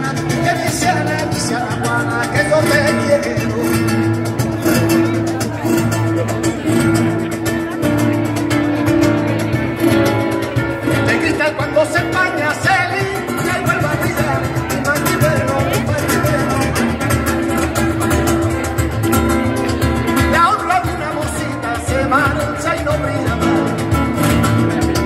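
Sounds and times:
man singing into a microphone: 0.0s - 6.4s, 10.8s - 18.6s, 20.2s - 25.0s
guitar accompaniment: 0.0s - 25.0s.

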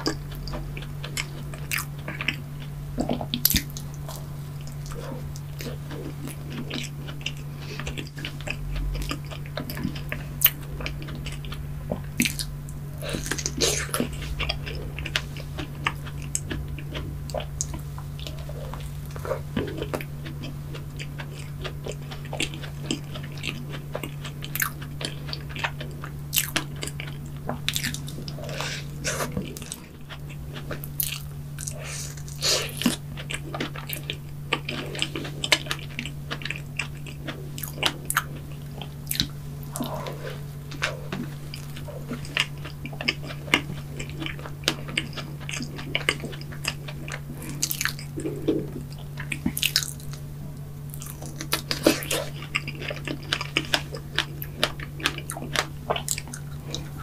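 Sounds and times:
biting and chewing: 0.0s - 57.0s
steady low hum: 0.0s - 57.0s.

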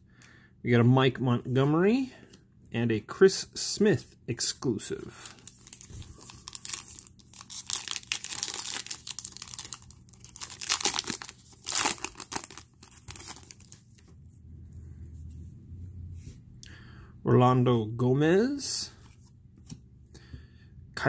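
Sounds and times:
foil pack tearing and crinkling: 5.4s - 13.8s.

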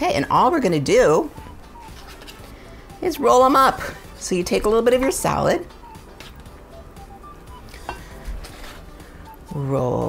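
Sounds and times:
faint background music: 0.0s - 10.0s
knife scraping: 1.8s - 2.6s, 7.7s - 9.0s.

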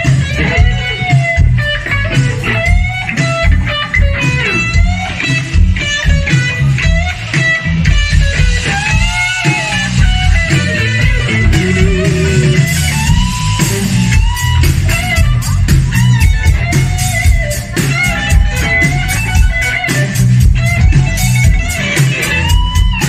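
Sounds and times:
drums: 0.0s - 23.0s
electric bass: 0.0s - 23.0s
electric guitar lead: 0.0s - 23.0s.

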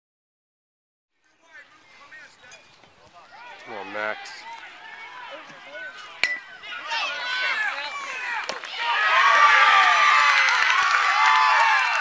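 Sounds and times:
crowd yelling and cheering: 3.0s - 12.0s
metal bat hitting ball: 6.2s - 6.5s.

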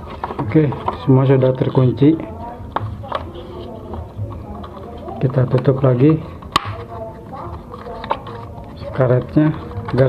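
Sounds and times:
rubber rubbing and handling: 0.0s - 10.0s.

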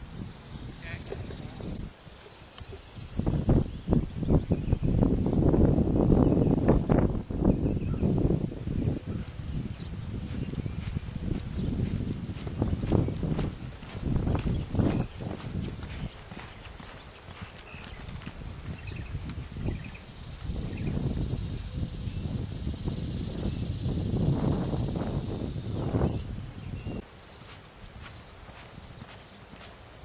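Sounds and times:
horse hoofbeats on ground: 10.3s - 20.8s, 27.3s - 30.0s.

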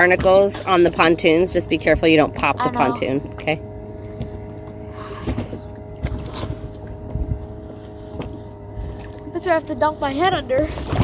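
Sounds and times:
soft low thumps: 0.0s - 11.0s
steady mechanical hum: 0.0s - 11.0s
water splashing against dinghy: 0.0s - 11.0s.

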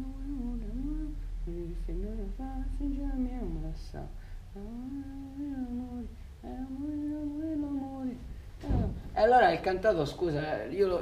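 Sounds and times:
person humming a melody: 0.0s - 9.0s.

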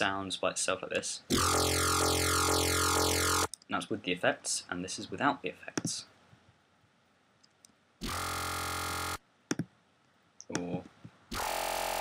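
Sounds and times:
mouse clicks: 9.5s - 9.7s.

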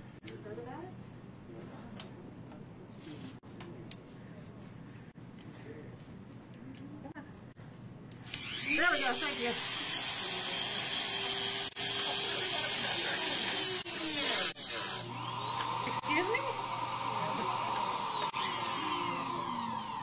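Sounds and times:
rotary tool high whine: 8.2s - 20.0s.

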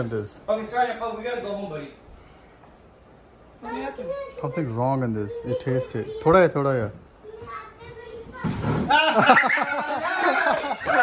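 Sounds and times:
faint children's voices: 3.5s - 8.9s.

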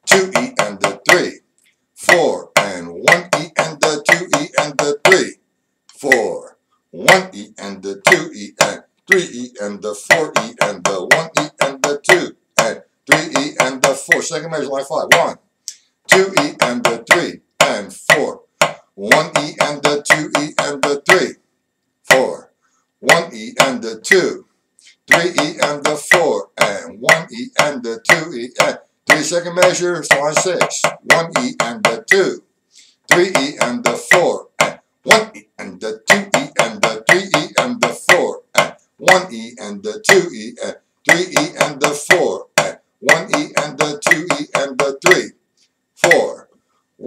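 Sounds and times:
drumsticks on snare drum: 0.0s - 1.4s, 2.0s - 5.3s, 7.0s - 7.4s, 8.0s - 15.4s, 16.1s - 21.4s, 22.1s - 22.4s, 23.0s - 24.4s, 25.1s - 32.4s, 33.1s - 45.3s, 46.0s - 46.4s.

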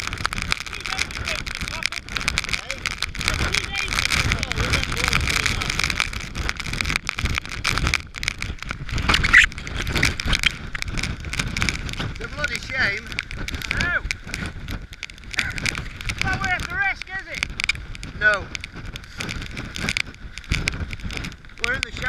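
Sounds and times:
driving rain: 0.0s - 22.0s
wind buffeting the microphone: 0.0s - 22.0s.

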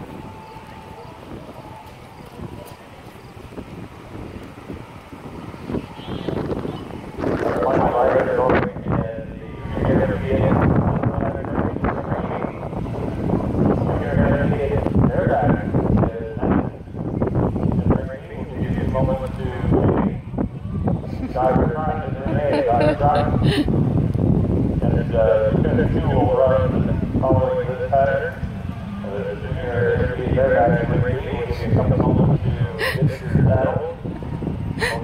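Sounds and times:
wind buffeting microphone: 0.0s - 35.0s
people talking indistinctly: 21.1s - 23.7s, 24.8s - 34.0s.

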